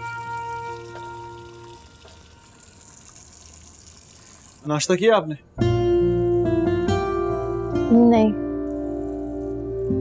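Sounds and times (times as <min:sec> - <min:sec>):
background music notes: 0:00.0 - 0:02.7, 0:05.5 - 0:10.0
water running from tap into sink: 0:00.0 - 0:04.9.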